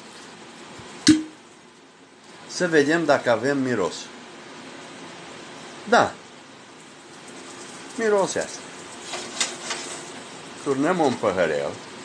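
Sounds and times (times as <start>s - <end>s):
glass stopper pop: 1.0s - 1.4s.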